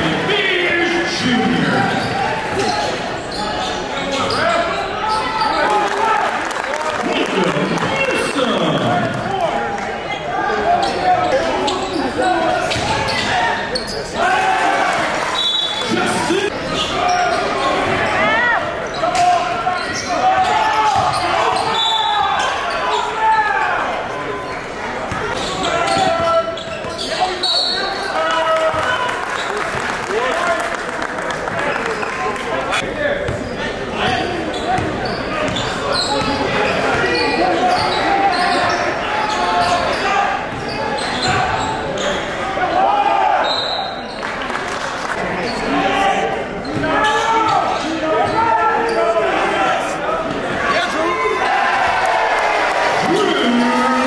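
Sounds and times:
echoing voices: 45.2 - 54.0.

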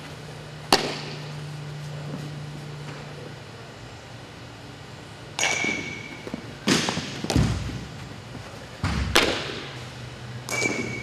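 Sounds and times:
metal bat hitting ball: 5.4 - 6.1, 10.5 - 11.0.

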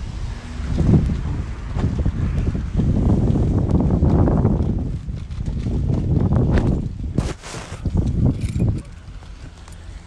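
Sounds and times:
phone microphone handling noise: 6.4 - 8.9.

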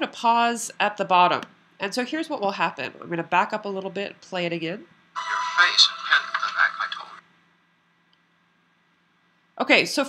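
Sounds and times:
thin old film soundtrack: 5.2 - 7.2.

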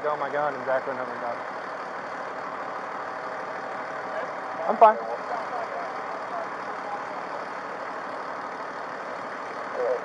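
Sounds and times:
vehicle engines idling: 0.0 - 10.0.

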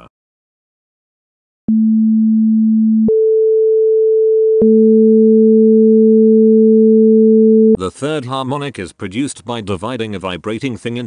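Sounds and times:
pure sine tones: 1.7 - 7.8.

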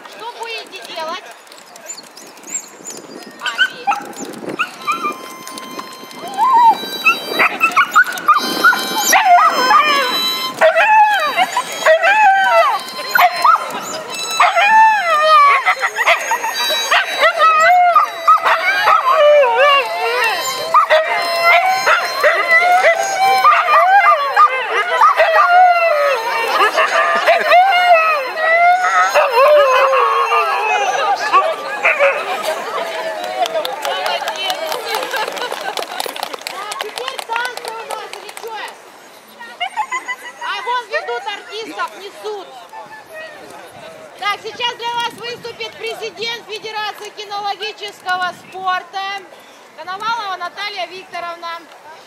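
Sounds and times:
dogs howling and yipping: 3.4 - 33.1.

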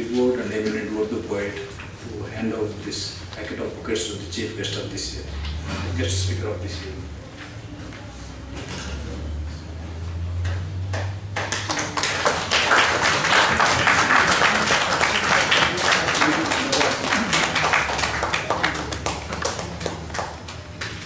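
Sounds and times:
audience applauding: 11.3 - 20.6.

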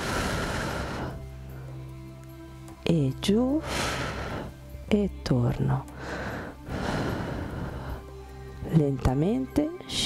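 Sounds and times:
person breathing into microphone: 0.0 - 1.8.

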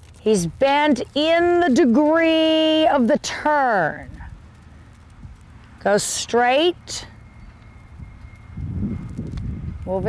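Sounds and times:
wind on microphone: 7.8 - 10.0.

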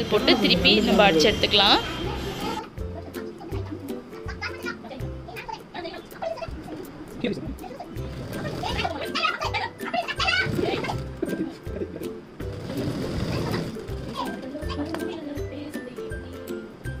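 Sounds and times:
background music: 0.0 - 17.0
sewing machine running: 8.0 - 9.0, 12.4 - 14.4.

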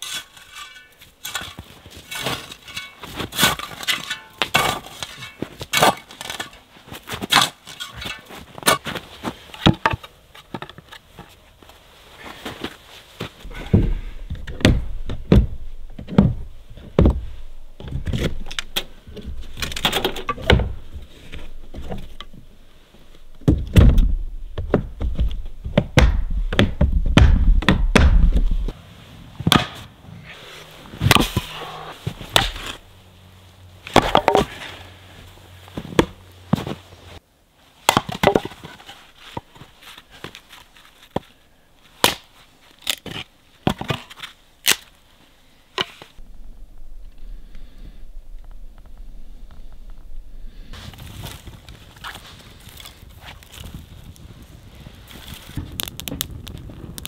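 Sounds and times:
firewood splitting cracks: 17.8 - 22.4, 32.2 - 32.8, 33.9 - 34.5, 42.0 - 45.0, 51.4 - 54.2, 55.1 - 57.0.

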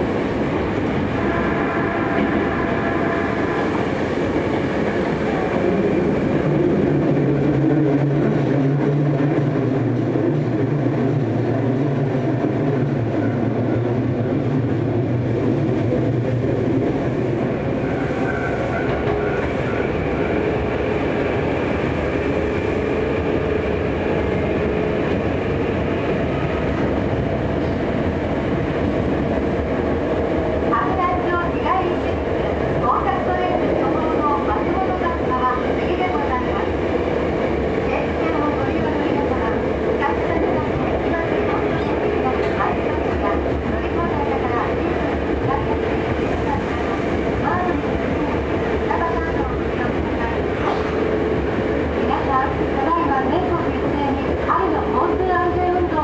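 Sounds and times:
train wheels rumbling: 0.0 - 56.0.

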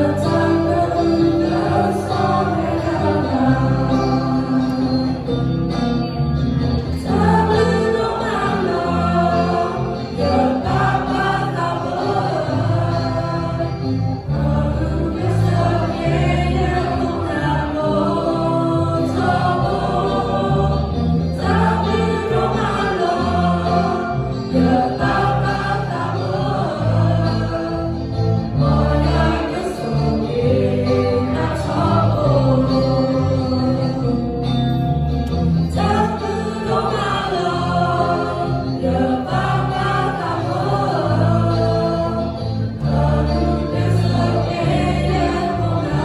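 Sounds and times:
choir of young voices singing: 0.0 - 5.8, 6.8 - 34.8, 35.6 - 46.0.

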